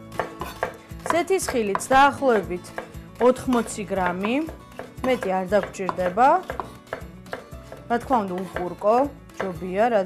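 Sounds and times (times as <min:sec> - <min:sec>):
knife chopping on wooden board: 0:00.1 - 0:08.8
background music with voice: 0:00.8 - 0:10.0.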